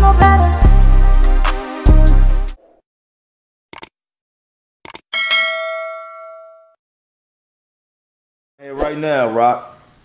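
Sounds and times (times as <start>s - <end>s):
notification bell ding: 5.2s - 6.8s.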